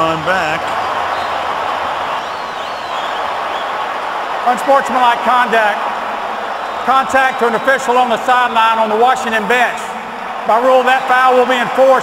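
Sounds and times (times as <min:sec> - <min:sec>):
stadium crowd roar: 0:00.0 - 0:12.0.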